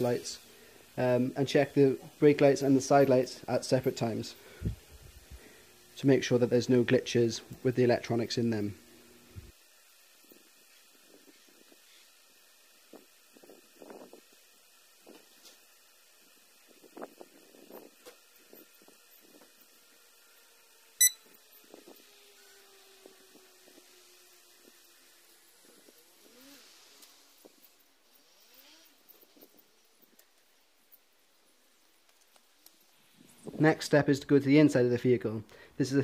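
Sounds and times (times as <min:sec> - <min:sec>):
sharp loud click or beep: 0:21.0 - 0:21.2.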